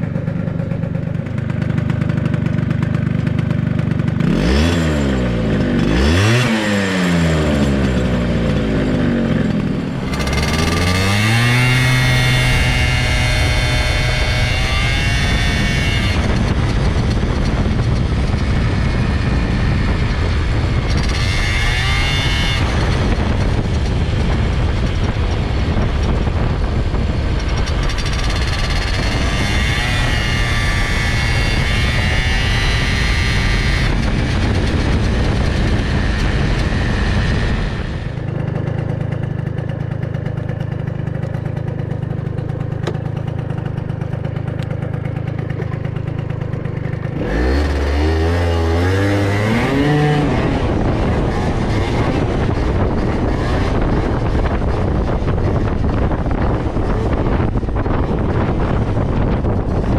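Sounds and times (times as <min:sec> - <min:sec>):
road noise: 0:00.0 - 0:59.9
scooter engine running: 0:00.0 - 0:59.9
wind rush on microphone: 0:03.3 - 0:59.9
high whine: 0:07.1 - 0:38.5.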